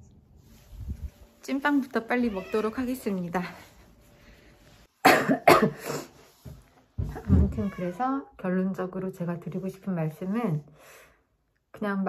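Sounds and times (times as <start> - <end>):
woman coughing: 5.0 - 6.1.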